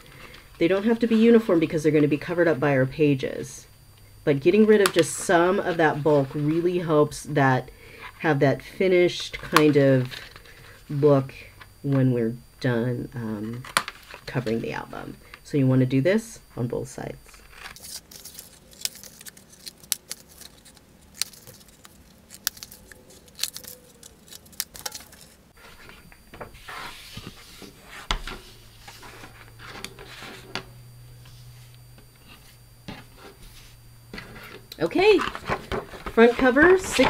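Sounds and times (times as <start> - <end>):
card rustling and sliding: 17.3 - 37.0.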